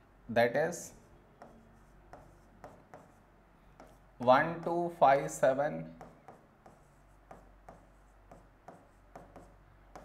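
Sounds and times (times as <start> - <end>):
pen tapping and scraping on screen: 1.4 - 3.2, 3.8 - 4.8, 5.8 - 10.0.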